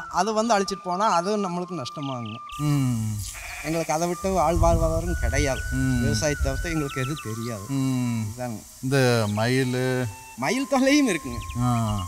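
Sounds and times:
man speaking: 2.6s - 12.0s.

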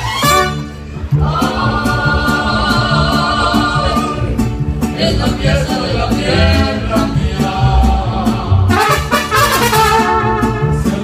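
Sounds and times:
mariachi band playing: 0.0s - 11.0s
plucked bass line: 0.0s - 11.0s.

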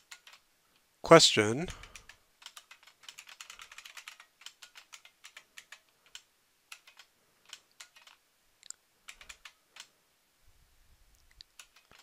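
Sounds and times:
typing on computer keyboard: 0.0s - 0.4s, 1.7s - 8.2s, 9.1s - 9.9s, 11.4s - 12.0s.

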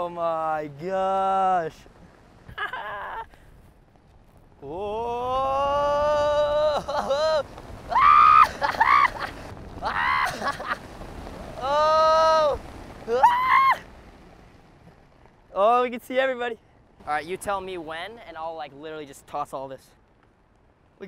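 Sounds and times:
person whooping and yelling: 2.6s - 3.3s, 4.6s - 10.8s, 11.6s - 13.9s.

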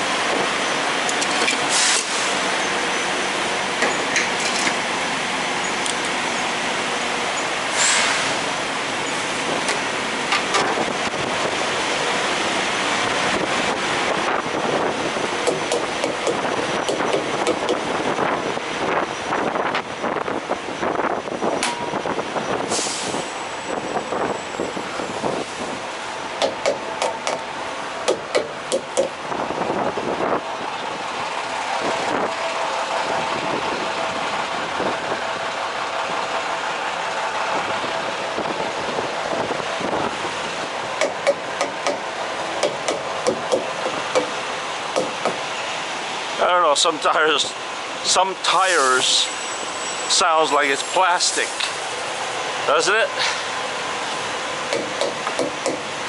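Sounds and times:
diesel trucks idling: 0.0s - 56.0s
air-brake hiss: 1.6s - 2.5s, 7.7s - 8.6s, 22.7s - 23.4s, 48.7s - 52.0s.

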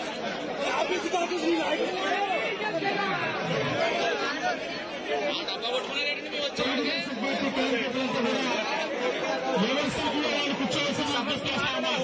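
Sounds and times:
crowd of men babbling: 0.0s - 12.0s.

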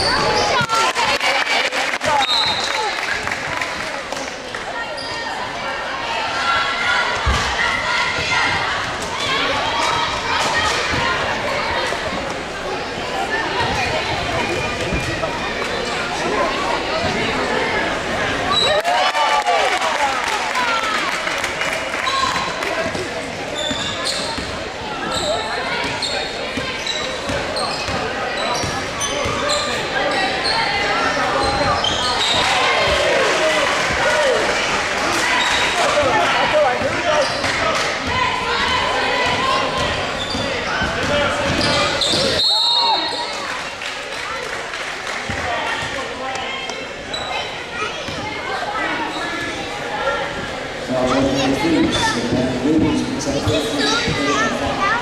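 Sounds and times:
sneakers squeaking: 0.0s - 0.8s, 2.0s - 3.4s, 4.2s - 5.6s, 7.0s - 17.7s, 22.0s - 33.1s, 35.2s - 43.8s, 45.3s - 54.7s.

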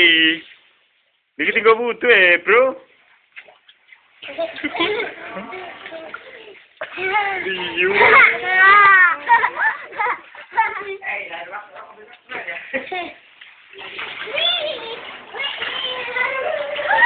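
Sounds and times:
young children shouting and squealing: 6.1s - 10.3s, 14.2s - 17.0s.

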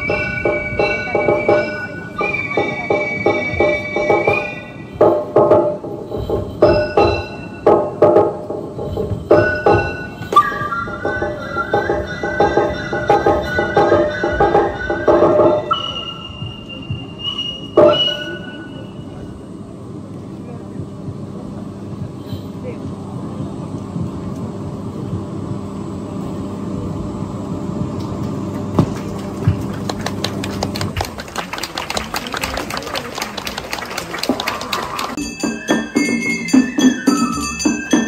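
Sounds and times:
percussion: 0.0s - 19.4s, 27.8s - 38.0s
steady low hum: 0.0s - 35.4s
crowd murmur: 0.0s - 38.0s.

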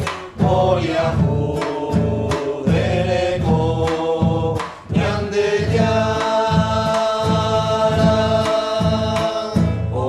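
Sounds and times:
acoustic guitar: 0.0s - 10.0s
drum strokes: 0.0s - 10.0s
group singing a hymn: 0.0s - 10.0s.

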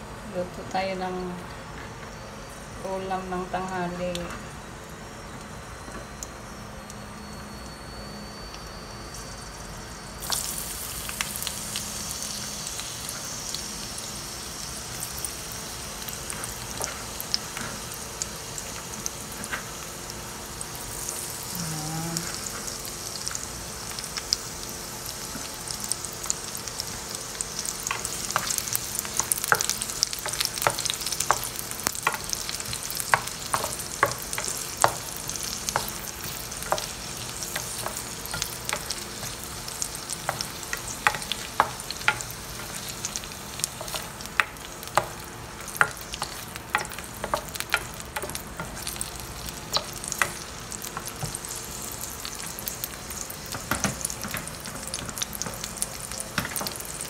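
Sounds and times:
onions sizzling in hot oil: 2.1s - 57.0s.

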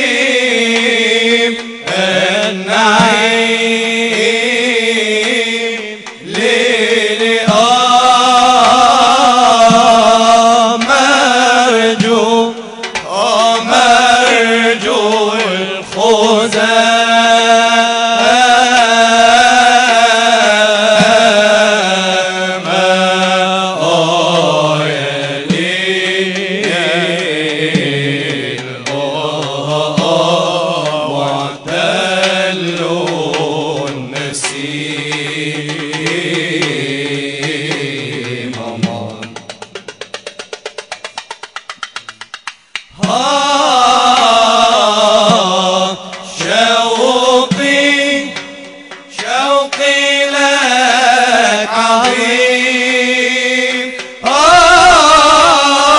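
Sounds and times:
man chanting: 0.0s - 40.2s, 42.9s - 55.9s
fast light percussion taps: 25.4s - 43.2s, 43.9s - 51.4s.

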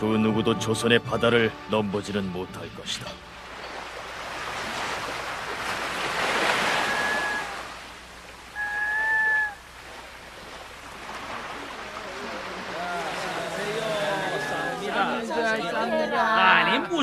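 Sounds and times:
sea surf washing: 3.2s - 17.0s
gull cries: 6.5s - 7.8s, 8.5s - 9.7s.

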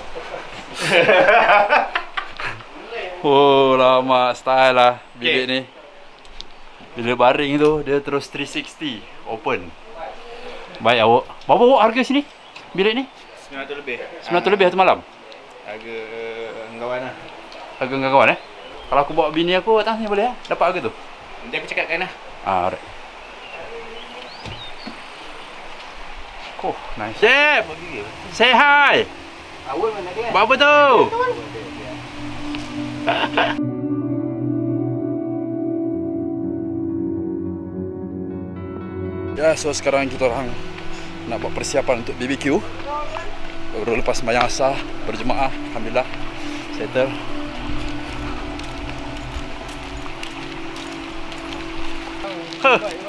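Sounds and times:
steady background hiss: 0.0s - 33.6s, 39.4s - 53.0s
soft background music: 27.7s - 53.0s
footsteps ticking: 39.7s - 53.0s
wind rumble on microphone: 43.2s - 52.2s.

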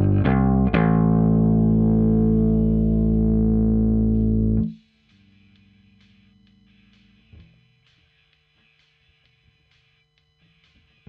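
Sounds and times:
electric bass guitar playing: 0.0s - 4.8s
faint hum: 0.0s - 11.0s.

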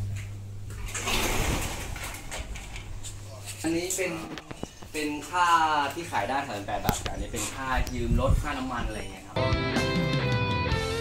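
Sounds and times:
low steady hum: 0.0s - 9.4s.

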